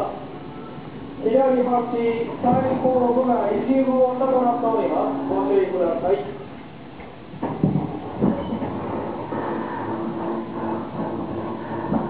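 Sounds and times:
train running rumble: 0.2s - 12.0s
wheels knocking over rail joints: 2.3s - 3.2s, 7.4s - 12.0s
humming tone: 7.8s - 12.0s.

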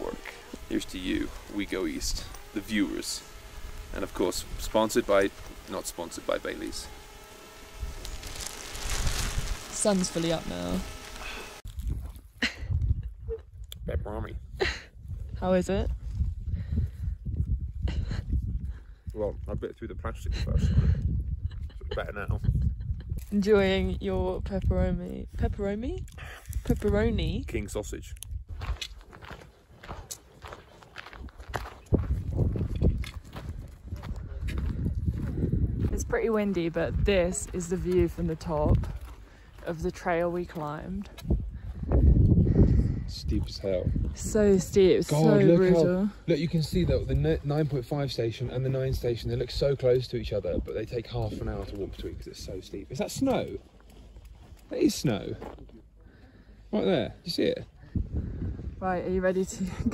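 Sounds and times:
footsteps crunching on gravel: 0.1s - 12.2s, 28.5s - 40.8s
wind buffeting microphone: 11.6s - 39.3s, 40.1s - 45.1s, 46.4s - 47.6s, 57.7s - 59.9s.

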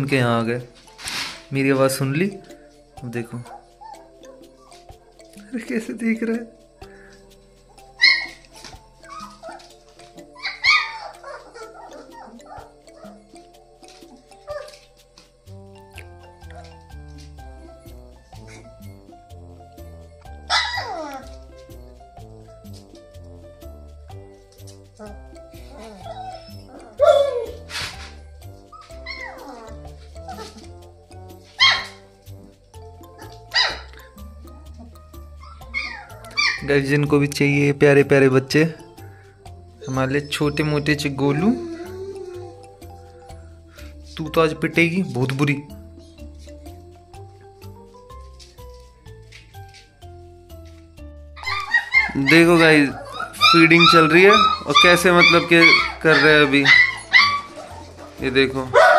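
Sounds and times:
background music: 0.0s - 58.9s
puppies yelping and whining: 2.4s - 5.4s, 6.9s - 15.3s, 16.3s - 19.1s, 20.2s - 21.8s, 24.1s - 37.1s, 38.8s - 44.1s, 51.4s - 58.9s.

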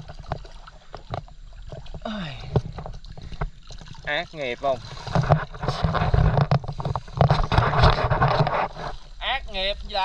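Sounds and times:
creek water splashing: 0.0s - 10.0s.

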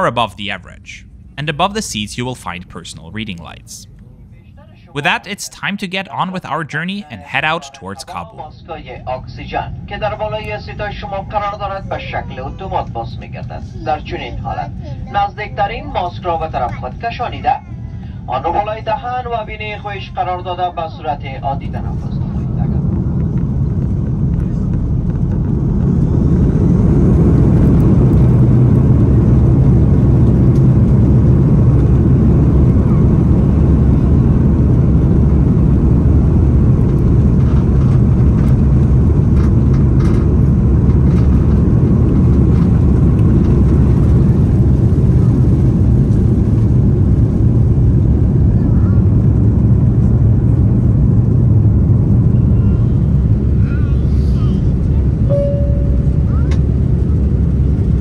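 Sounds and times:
jet engine roar in cabin: 7.1s - 58.0s.

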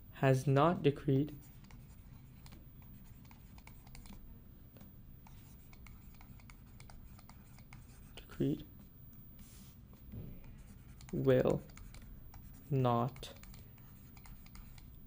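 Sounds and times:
stylus scratching on a tablet: 1.3s - 15.0s.

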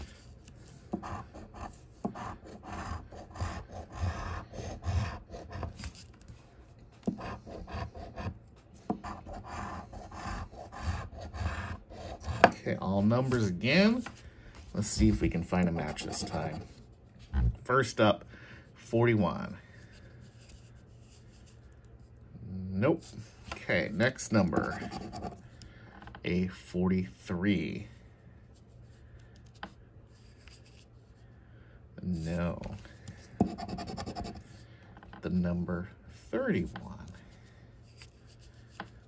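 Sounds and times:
low steady hum: 0.0s - 39.0s
coin scraping scratch card: 24.5s - 25.4s, 33.4s - 34.4s.

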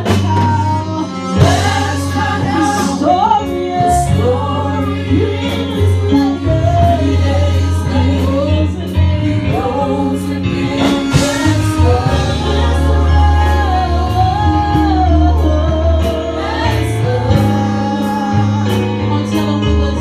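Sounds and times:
steady drum beat: 0.0s - 20.0s
sustained bass notes: 0.0s - 20.0s
voices singing gospel: 0.0s - 20.0s.

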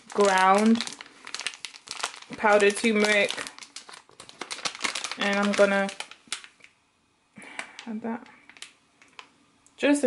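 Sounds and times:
plastic packet crinkling: 0.0s - 6.8s, 7.5s - 9.4s.

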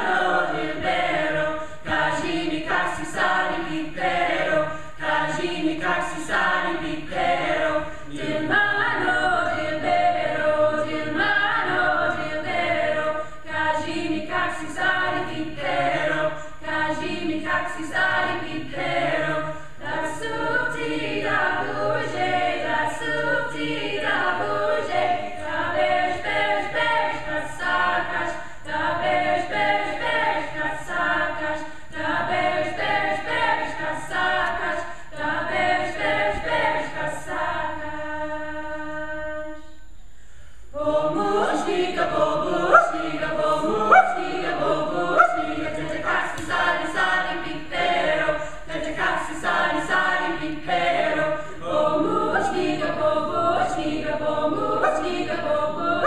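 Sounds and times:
mixed choir singing folk song: 0.0s - 56.0s.

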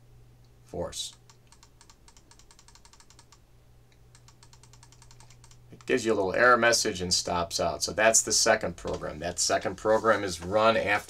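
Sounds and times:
rapid computer key tapping: 1.1s - 3.4s, 4.1s - 6.2s.

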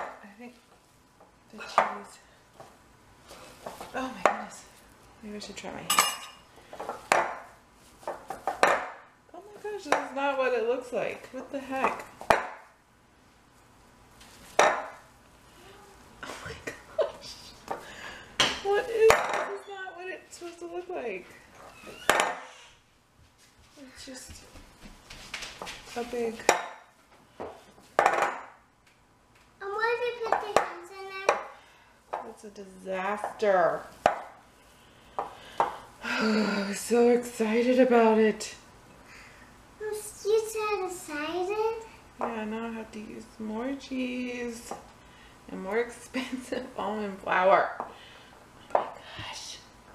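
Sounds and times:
glass bowl knocking on countertop: 11.8s - 12.6s, 14.6s - 15.0s, 27.4s - 28.6s.

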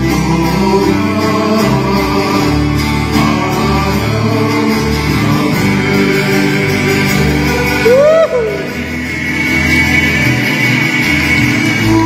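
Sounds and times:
bass line: 0.0s - 12.0s
strummed acoustic guitars: 0.0s - 12.0s.

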